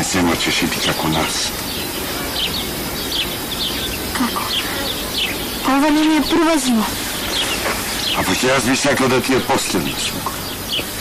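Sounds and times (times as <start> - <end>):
insect buzz: 0.2 - 11.0
high bird chirps: 0.8 - 11.0.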